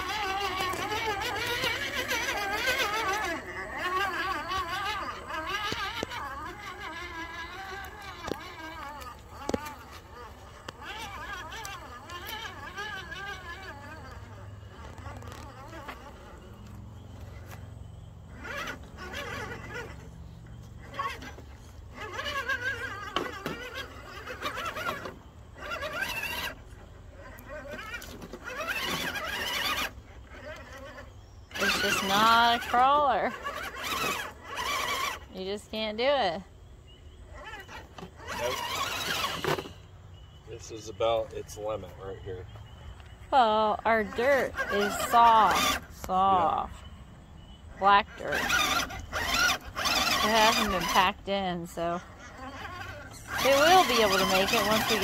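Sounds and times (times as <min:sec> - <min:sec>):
electric motor whining: 0:00.0 - 0:55.0.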